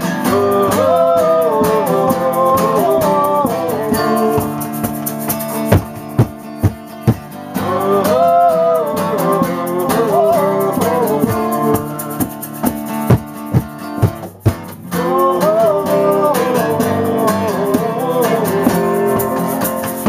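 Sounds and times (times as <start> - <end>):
acoustic guitar strumming: 0.0 - 20.0
bending lead melody: 3.9 - 7.3
sharp thumps: 4.4 - 7.3, 12.2 - 14.8.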